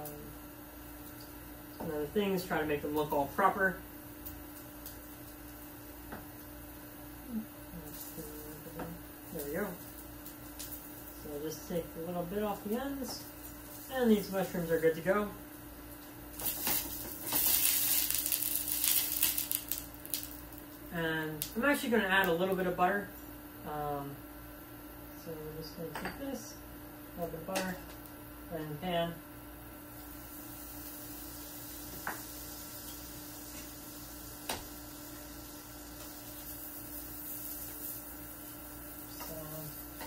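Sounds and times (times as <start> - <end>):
sausages sizzling in a pan: 0.0 - 22.9, 29.6 - 40.0
induction burner electrical hum: 0.0 - 40.0.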